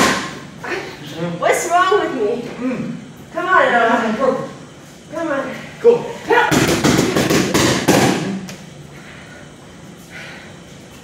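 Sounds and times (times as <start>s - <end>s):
boxing gloves striking focus mitts: 6.5s - 8.4s.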